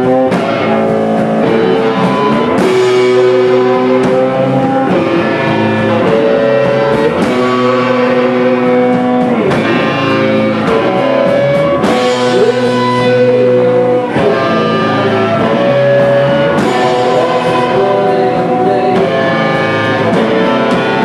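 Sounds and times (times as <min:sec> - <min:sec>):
drums: 0:00.0 - 0:21.0
electric bass: 0:00.0 - 0:21.0
electric guitar sustained notes: 0:00.0 - 0:21.0.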